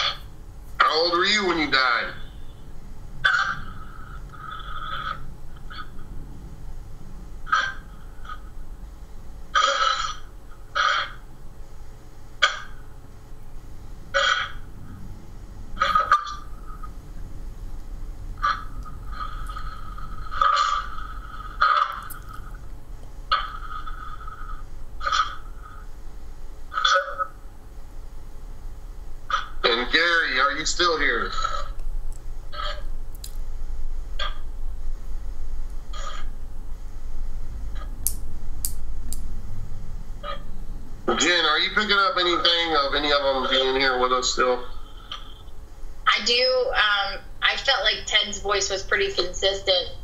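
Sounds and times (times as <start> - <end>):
radio static bursts: 41.1 - 45.2, 46.1 - 50.0.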